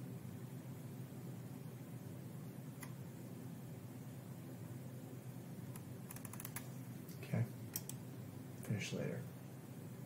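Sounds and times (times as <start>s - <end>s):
faint low hum: 0.0s - 10.0s
faint computer clicks: 5.7s - 8.0s.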